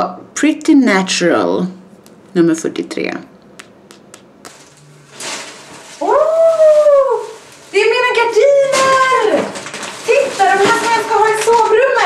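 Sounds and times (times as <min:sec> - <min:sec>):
packaging rustling: 0:04.4 - 0:12.0.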